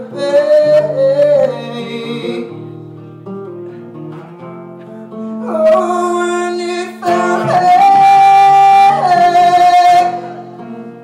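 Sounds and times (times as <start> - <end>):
man singing long notes: 0.0 - 2.6, 5.4 - 10.9
acoustic guitar: 0.0 - 11.0.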